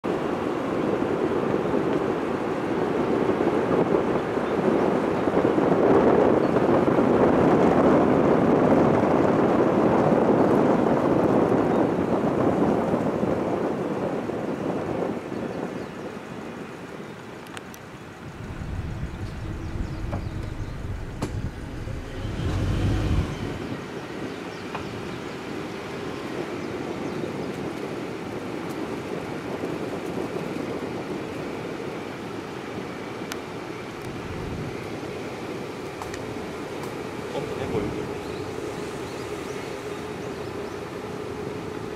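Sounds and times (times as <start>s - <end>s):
air and tyre rushing noise: 0.1s - 41.9s
deep rumble: 18.2s - 23.8s.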